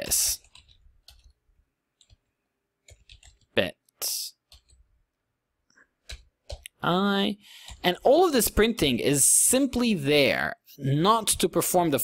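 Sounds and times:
computer keyboard typing: 0:00.1 - 0:01.4, 0:02.0 - 0:03.6, 0:04.4 - 0:04.9, 0:06.0 - 0:09.0.

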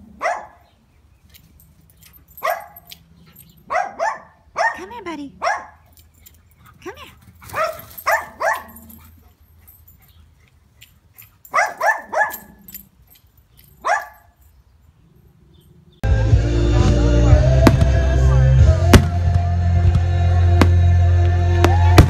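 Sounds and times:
dog barking: 0:00.2 - 0:00.6, 0:02.4 - 0:02.9, 0:03.7 - 0:05.9, 0:07.5 - 0:09.0, 0:11.5 - 0:12.7, 0:13.8 - 0:14.3
loud music: 0:16.1 - 0:22.0
fireworks cracking: 0:17.5 - 0:22.0.

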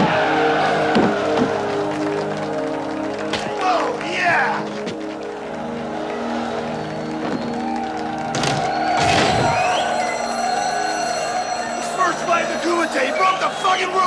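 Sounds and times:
film music with held chords: 0:00.0 - 0:14.0
men shouting and cheering: 0:00.0 - 0:14.0.

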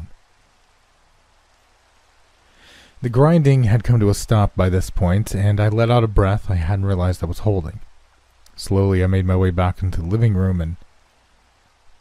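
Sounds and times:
faint steady rain hiss: 0:00.0 - 0:12.0.

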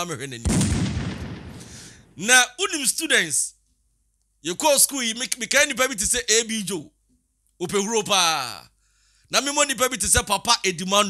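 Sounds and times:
man's voice: 0:00.0 - 0:00.5, 0:02.2 - 0:03.5, 0:04.5 - 0:06.9, 0:07.6 - 0:08.6, 0:09.3 - 0:11.0.

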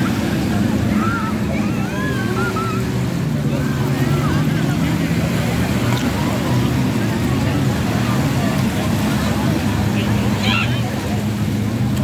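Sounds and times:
jet ski engine droning: 0:00.0 - 0:12.0.

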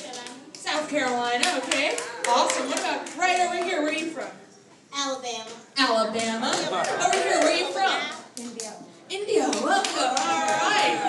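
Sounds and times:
crowd clapping: 0:00.0 - 0:04.1, 0:06.2 - 0:08.7, 0:09.4 - 0:11.0
long held cheer: 0:09.6 - 0:11.0.

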